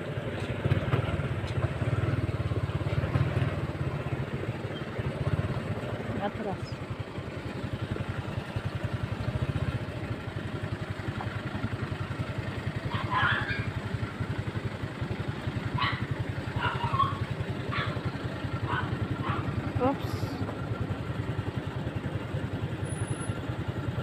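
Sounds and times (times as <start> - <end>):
motorcycle engine running: 0.0 - 24.0.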